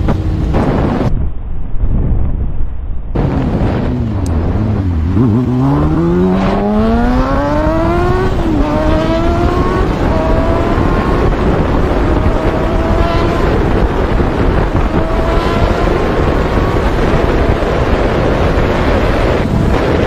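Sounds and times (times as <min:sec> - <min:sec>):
motorcycle engine accelerating: 0:00.0 - 0:01.2, 0:03.1 - 0:20.0
wind noise on microphone: 0:00.0 - 0:20.0.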